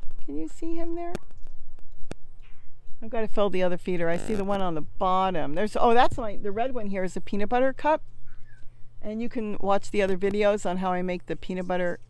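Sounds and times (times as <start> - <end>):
hummingbird chirp: 8.0 - 8.8.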